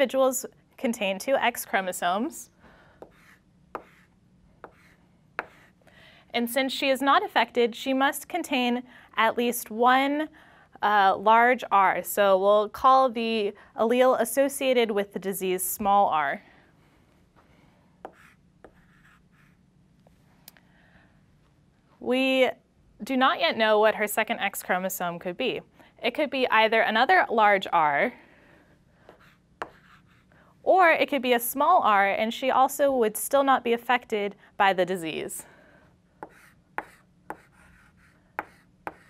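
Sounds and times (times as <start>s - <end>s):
chalk tapping on blackboard: 3.0s - 5.7s, 18.0s - 19.5s, 29.1s - 30.3s, 36.2s - 39.0s
chalk scratching on blackboard: 3.0s - 5.8s, 18.0s - 19.6s, 29.1s - 30.3s, 36.2s - 39.0s.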